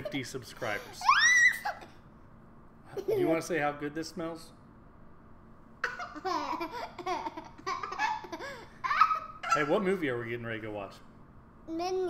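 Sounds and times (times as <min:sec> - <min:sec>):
toddler laughing and vocalizing: 0:05.8 - 0:09.7.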